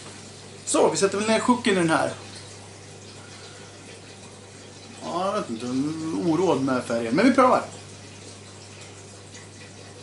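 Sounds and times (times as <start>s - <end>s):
faint constant hum: 0.0s - 10.0s.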